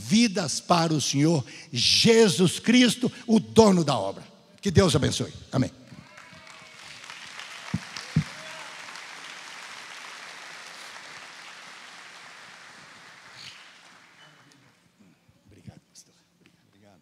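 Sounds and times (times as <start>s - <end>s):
congregation applauding: 5.8s - 14.8s.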